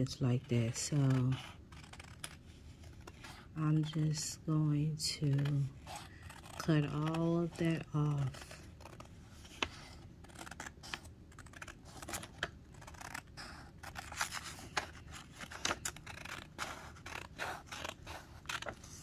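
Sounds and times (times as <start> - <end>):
scissors snipping paper: 0.0 - 4.3, 5.0 - 19.0.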